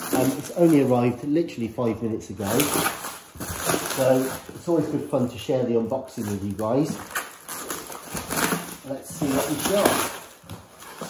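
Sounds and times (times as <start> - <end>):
plastic wrapping rustling: 0.0 - 11.0.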